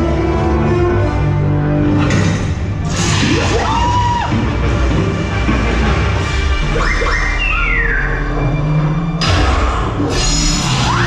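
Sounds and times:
orchestral music: 0.0s - 11.0s
swooping electronic effects: 6.5s - 9.1s.

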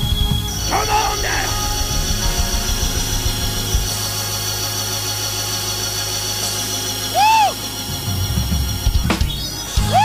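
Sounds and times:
low drum beats: 0.0s - 5.1s
low bass note: 0.0s - 6.1s
held keyboard chords: 0.0s - 10.0s.

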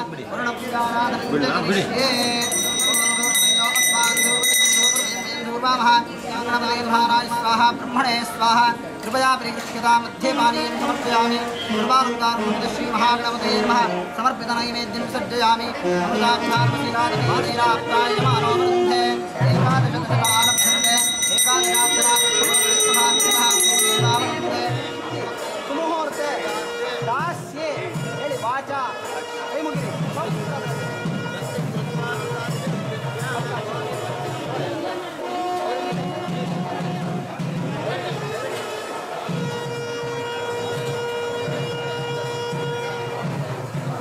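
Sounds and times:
brass hand bell ringing: 2.1s - 5.9s, 20.2s - 25.6s
men chanting: 11.9s - 25.9s.

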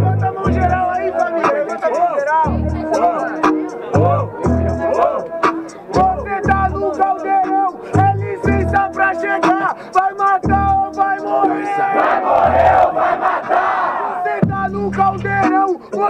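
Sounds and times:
crowd shouting: 0.0s - 7.8s, 11.0s - 14.6s
hip-hop beat with heavy kick drum: 0.0s - 13.5s, 14.3s - 16.0s.

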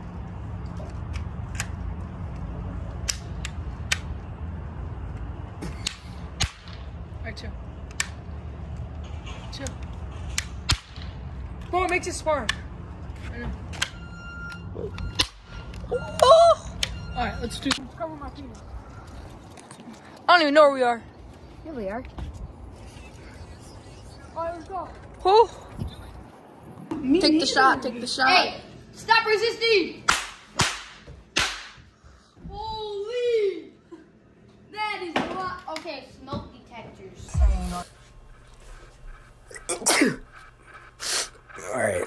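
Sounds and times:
sharp crack: 5.8s - 6.9s, 10.3s - 11.2s, 30.1s - 31.8s.

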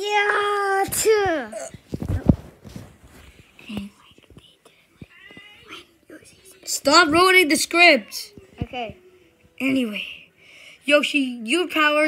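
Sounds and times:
plush toys tapping and rustling: 0.8s - 5.6s.

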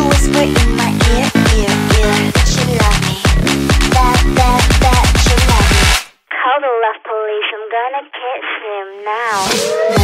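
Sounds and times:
person speaking through telephone filter: 6.3s - 9.5s.

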